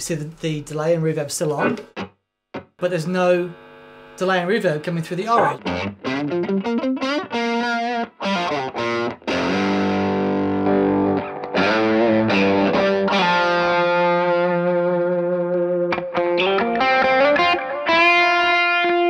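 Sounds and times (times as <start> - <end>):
overdriven electric guitar: 5.2 - 19.0.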